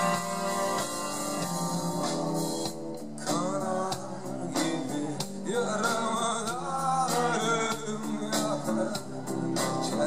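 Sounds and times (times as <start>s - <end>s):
drums: 0.0s - 10.0s
electric guitars: 0.0s - 10.0s.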